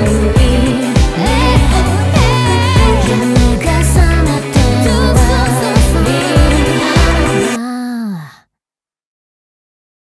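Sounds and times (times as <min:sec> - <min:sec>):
pop band playing: 0:00.0 - 0:07.6.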